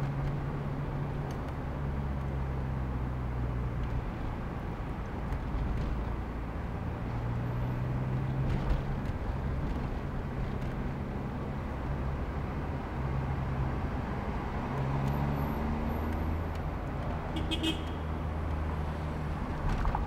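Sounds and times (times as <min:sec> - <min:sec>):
car engine and road noise: 0:00.0 - 0:20.0.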